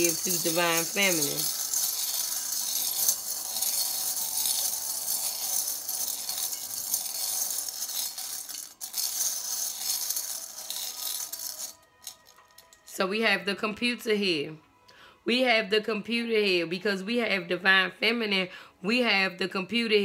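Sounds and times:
metal charms jingling in glass bowl: 0.0s - 12.9s
soft background music: 0.0s - 20.0s.

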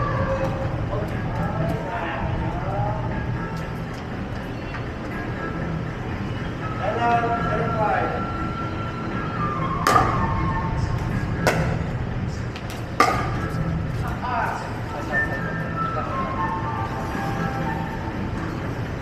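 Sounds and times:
music: 0.0s - 19.0s.

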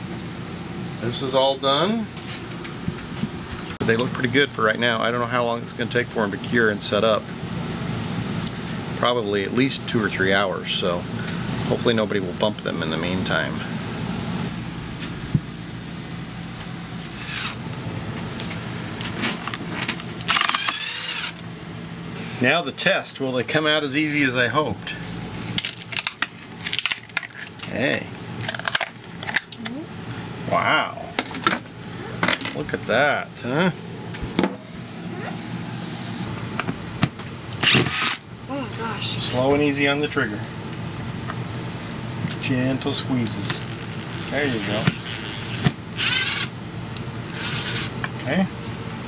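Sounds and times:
steady low hum: 0.0s - 49.0s
cordless drill motor whirring: 17.1s - 17.6s, 20.2s - 21.4s, 37.6s - 38.2s, 43.6s - 46.6s, 47.3s - 48.0s.

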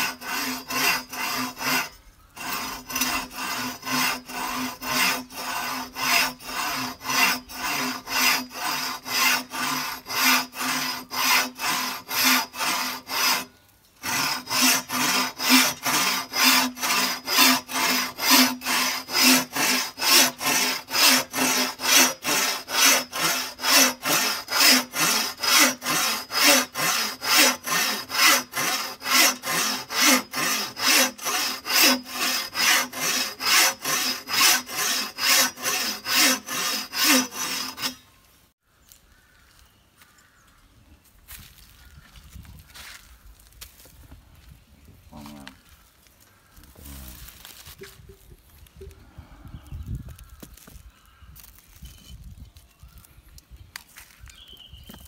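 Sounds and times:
hand saw cutting bamboo: 0.0s - 38.0s.

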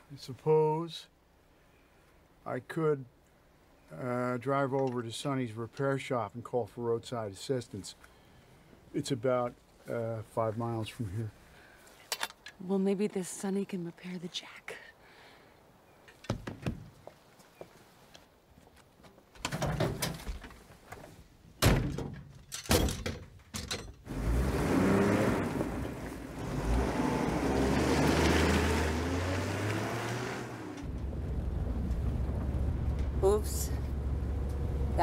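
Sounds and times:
van door slamming shut: 21.6s - 23.1s
van engine starting and driving: 24.0s - 35.0s.

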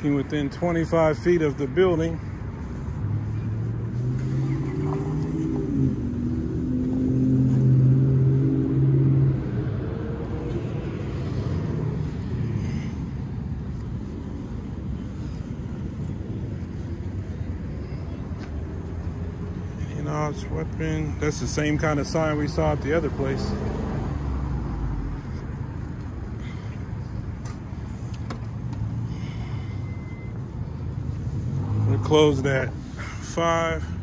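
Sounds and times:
low traffic noise: 0.0s - 34.0s
vehicle engine driving by: 2.6s - 27.2s.

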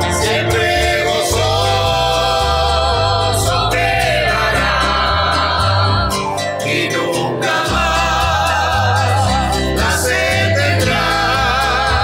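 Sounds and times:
group singing a hymn: 0.0s - 12.0s
instrumental accompaniment with bass: 0.0s - 12.0s.

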